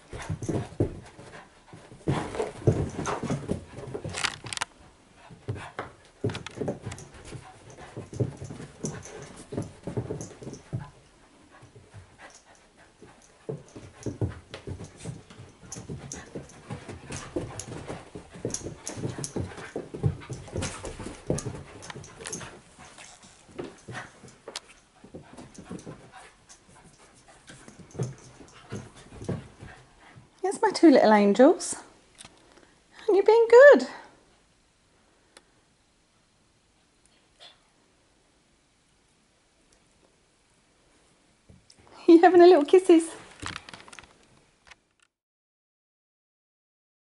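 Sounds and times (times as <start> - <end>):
puppies scuffling: 0.0 - 30.7
dogs vocalizing while playing: 5.2 - 30.3.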